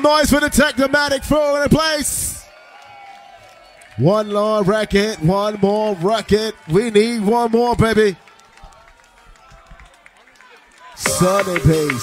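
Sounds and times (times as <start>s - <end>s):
mc's voice: 0.0s - 2.4s, 4.0s - 8.2s, 11.0s - 12.0s
drum and bass music: 11.0s - 12.0s.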